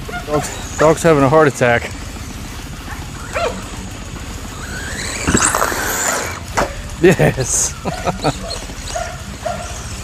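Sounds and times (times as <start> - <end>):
toy car motor whining: 2.7 - 6.8
dog whimpering and yelping: 7.9 - 9.1.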